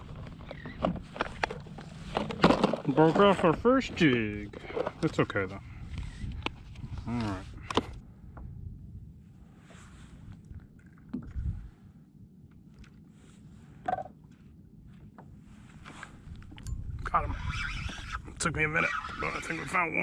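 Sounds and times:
fishing gear clicks and knocks: 0.0s - 5.3s
low wind rumble: 0.0s - 20.0s
water lapping against kayak hull: 9.8s - 16.6s.

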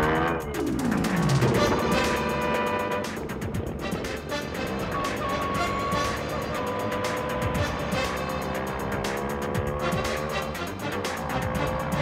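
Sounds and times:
background music with quick beat: 0.0s - 12.0s
motorcycle running: 0.0s - 12.0s
trucks running: 0.0s - 12.0s.

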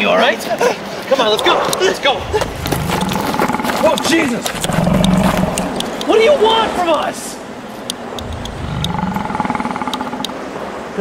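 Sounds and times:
faint sharp clicks: 3.8s - 6.2s, 7.8s - 10.4s
pulsing electronic buzzing hum: 8.2s - 10.5s.

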